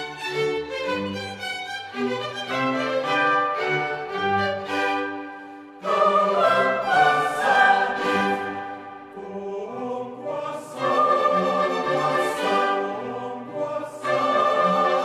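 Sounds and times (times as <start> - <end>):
choir and orchestra sacred music: 0.0 - 15.0.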